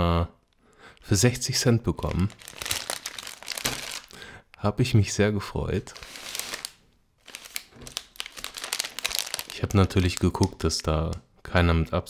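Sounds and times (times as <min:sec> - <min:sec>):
plastic wrapper crinkling: 0:01.9 - 0:04.2, 0:05.8 - 0:11.1.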